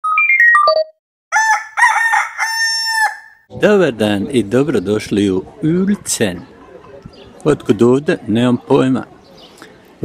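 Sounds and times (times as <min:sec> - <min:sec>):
rooster crowing: 0:01.3 - 0:03.4.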